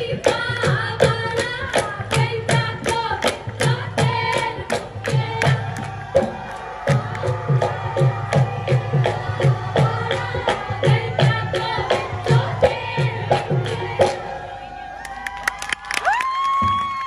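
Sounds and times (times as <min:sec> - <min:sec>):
sharp percussive beat: 0:00.0 - 0:14.2
women singing: 0:00.0 - 0:14.5.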